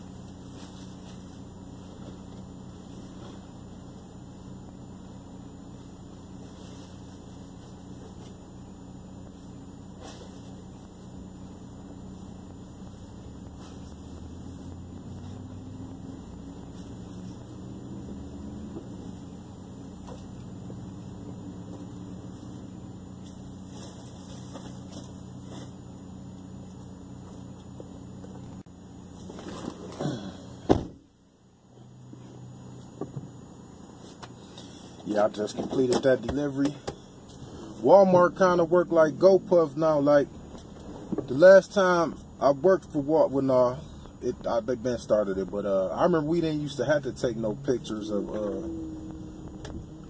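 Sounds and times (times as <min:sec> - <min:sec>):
car engine idling: 0:00.0 - 0:50.0
car door shutting: 0:29.4 - 0:31.1.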